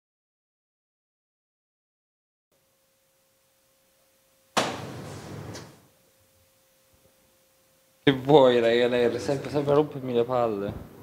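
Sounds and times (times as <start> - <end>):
faint steady hum: 2.5 - 11.0
sudden thump: 4.6 - 5.7
rustling noise: 4.6 - 5.9.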